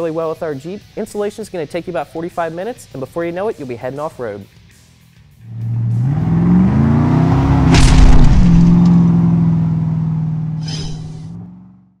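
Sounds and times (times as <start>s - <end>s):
engine revving: 5.3s - 11.9s
loud hit: 7.6s - 9.1s.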